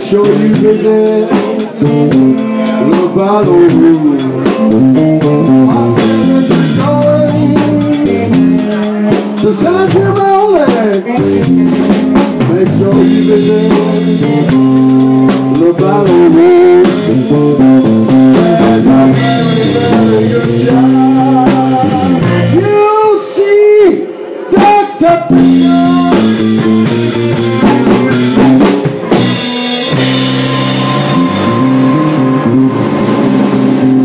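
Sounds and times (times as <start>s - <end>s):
bass guitar: 0.0s - 23.0s, 24.5s - 34.0s
drum kit with rimshots and cymbals: 0.0s - 34.0s
electric guitar lead line: 0.0s - 34.0s.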